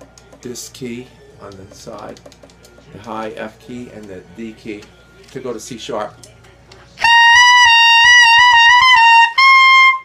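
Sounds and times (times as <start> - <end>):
tenor saxophone high note: 7.0 - 10.0.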